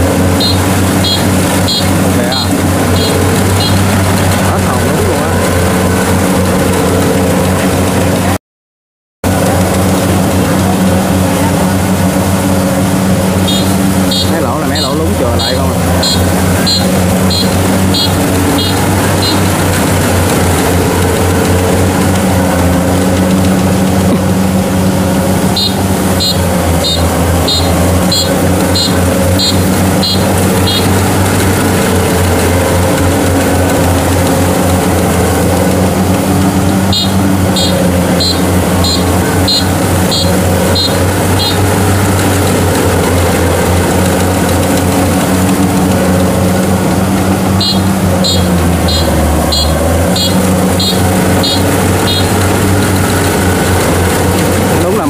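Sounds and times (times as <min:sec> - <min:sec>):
combine harvester engine: 0:00.0 - 0:08.4, 0:09.2 - 0:55.0
short high-pitched beeps: 0:00.4 - 0:03.9, 0:13.4 - 0:19.6, 0:25.6 - 0:31.0, 0:36.9 - 0:41.7, 0:47.6 - 0:52.4.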